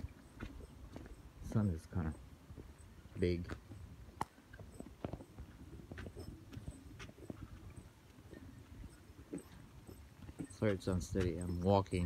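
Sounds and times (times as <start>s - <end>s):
footsteps walking: 0.0s - 12.0s.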